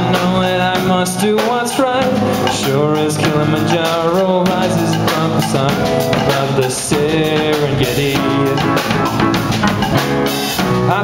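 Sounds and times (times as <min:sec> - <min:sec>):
drum kit with cymbal hits: 0:00.0 - 0:11.0
electric guitars: 0:00.0 - 0:11.0.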